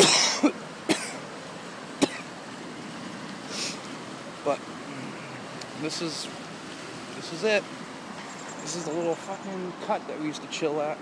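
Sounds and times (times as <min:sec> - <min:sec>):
man coughing: 0:00.0 - 0:01.2, 0:02.0 - 0:02.3.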